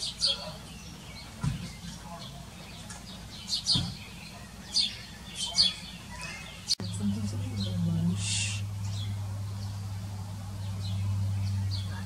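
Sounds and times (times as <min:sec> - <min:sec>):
high bird chirp: 0:00.0 - 0:09.8
steady low hum: 0:00.0 - 0:12.0.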